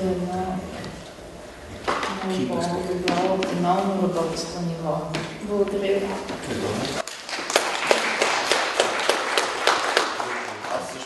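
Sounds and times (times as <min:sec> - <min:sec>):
audience applauding: 0:07.0 - 0:11.0.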